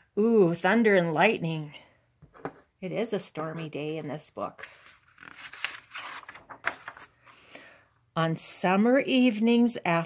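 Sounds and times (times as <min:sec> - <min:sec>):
paper rustling and sliding: 0:04.5 - 0:07.4.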